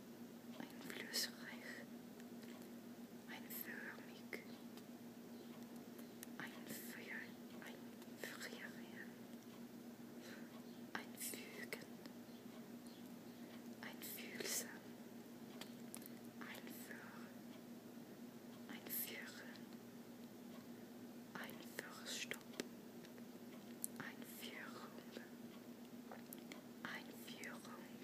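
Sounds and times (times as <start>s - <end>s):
steady low hum: 0.0s - 28.0s
person whispering: 0.6s - 1.9s, 3.3s - 4.5s, 6.4s - 9.2s, 10.9s - 11.9s, 13.8s - 14.8s, 16.4s - 17.4s, 18.7s - 19.7s, 21.3s - 22.5s, 24.0s - 25.3s, 26.8s - 28.0s.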